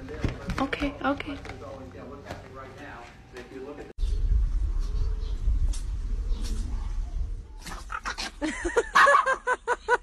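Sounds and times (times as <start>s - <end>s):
dogs yelping: 7.6s - 9.5s.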